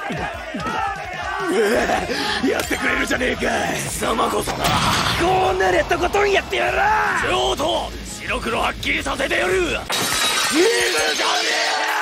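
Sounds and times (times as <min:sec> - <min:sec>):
glass shattering: 0:09.9 - 0:12.0.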